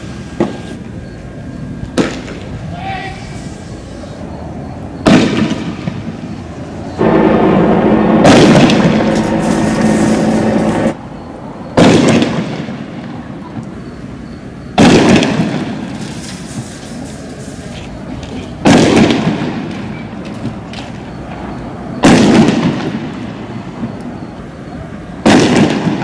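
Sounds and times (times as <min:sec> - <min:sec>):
explosive bangs with echo: 0:05.0 - 0:06.2, 0:07.0 - 0:11.0, 0:11.8 - 0:12.8, 0:14.8 - 0:15.8, 0:18.6 - 0:19.7, 0:22.0 - 0:23.2, 0:25.2 - 0:26.0
loud steady droning tone: 0:05.7 - 0:11.9.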